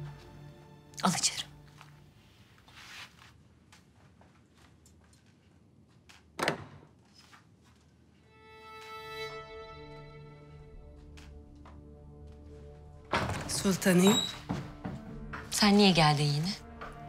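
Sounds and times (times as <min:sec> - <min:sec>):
bowed string music: 0:00.0 - 0:02.1, 0:08.3 - 0:17.0
footsteps on floor: 0:10.6 - 0:15.8.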